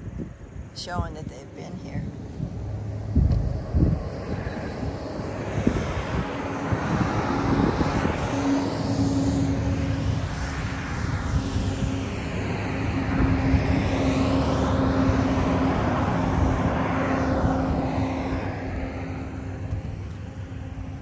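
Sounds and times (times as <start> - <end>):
highway traffic passing: 0.0 - 21.0
heavy truck passing: 2.0 - 21.0.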